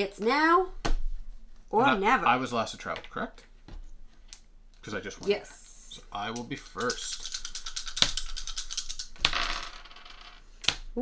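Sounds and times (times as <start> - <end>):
dice clattering on board: 6.3 - 10.9.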